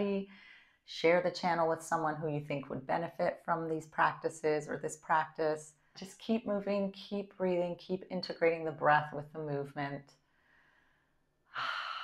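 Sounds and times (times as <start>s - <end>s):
woman breathing: 0.3s - 0.9s, 10.2s - 12.0s.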